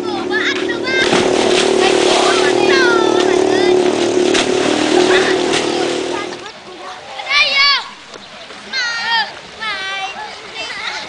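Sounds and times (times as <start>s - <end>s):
motor drone: 0.0s - 6.5s
children shouting: 0.0s - 8.1s
splash into water: 0.6s - 6.5s.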